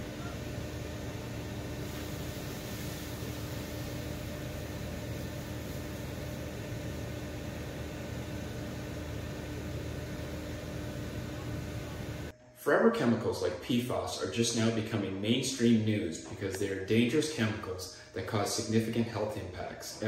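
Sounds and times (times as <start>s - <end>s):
low hum: 0.0s - 13.6s
steady droning tone: 0.0s - 19.2s.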